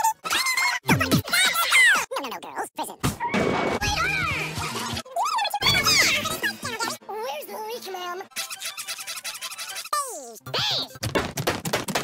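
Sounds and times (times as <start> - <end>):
cartoon voices: 0.0 - 11.0.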